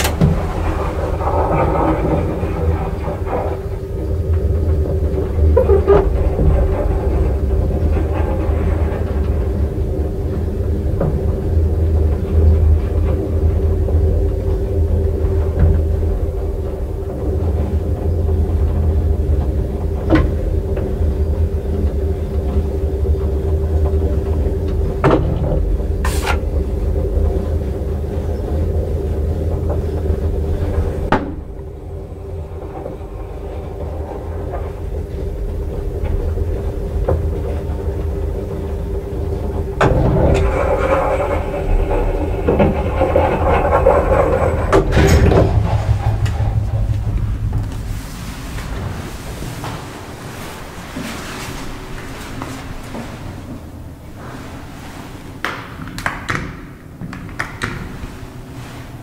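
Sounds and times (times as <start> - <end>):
motor hum: 0.0 - 55.4
elevator low rumble: 0.0 - 56.0, 56.6 - 59.0.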